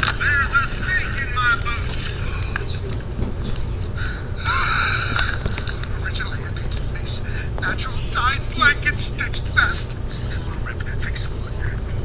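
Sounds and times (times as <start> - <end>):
steady low hum: 0.0 - 12.0
voice sounds from television: 0.0 - 12.0.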